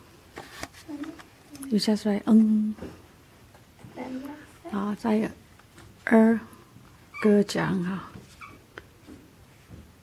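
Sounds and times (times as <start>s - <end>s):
marker squeaking on whiteboard: 8.3s - 8.6s.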